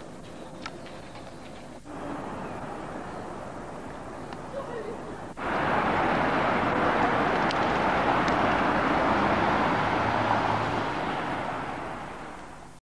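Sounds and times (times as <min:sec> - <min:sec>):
traffic on a wet road: 0:01.9 - 0:12.8.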